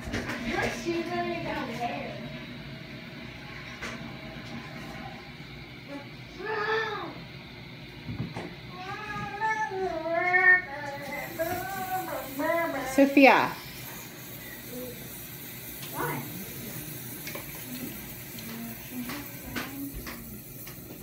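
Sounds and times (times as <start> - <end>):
child singing: 8.8 - 12.7.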